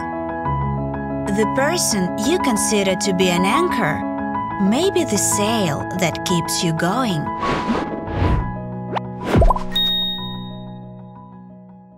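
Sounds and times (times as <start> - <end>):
rising swoop: 7.3 - 9.8
bright ding: 9.7 - 11.0.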